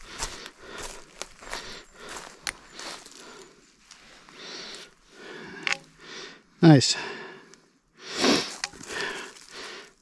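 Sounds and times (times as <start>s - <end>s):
person breathing and sniffing: 0.0s - 3.6s, 4.2s - 6.4s, 7.0s - 10.0s.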